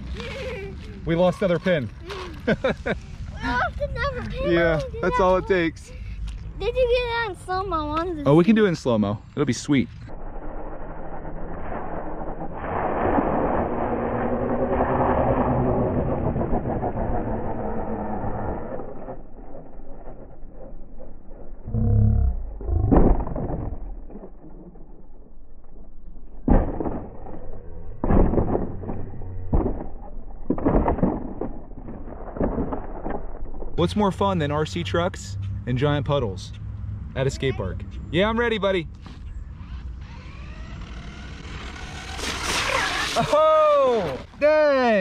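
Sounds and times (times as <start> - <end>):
slowed low drone: 9.2 - 37.2.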